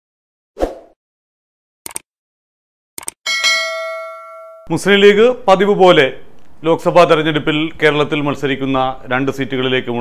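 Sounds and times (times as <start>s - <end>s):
bright bell ding: 3.3s - 4.7s.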